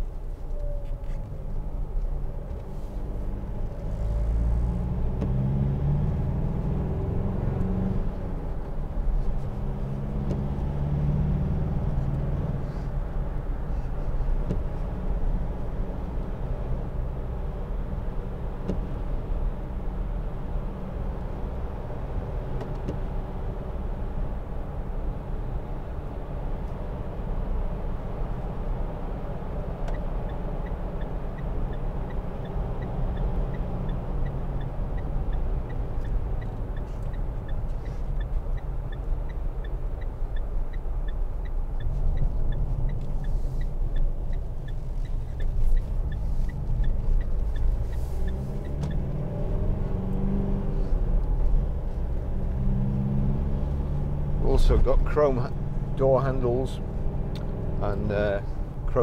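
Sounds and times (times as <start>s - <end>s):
diesel engine while driving: 0.0s - 59.0s
road noise: 0.0s - 59.0s.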